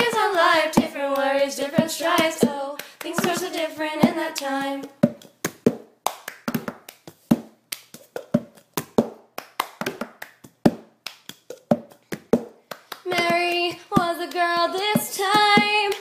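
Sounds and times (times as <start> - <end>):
girl singing: 0.0 - 5.0, 13.0 - 16.0
hand claps: 0.0 - 16.0.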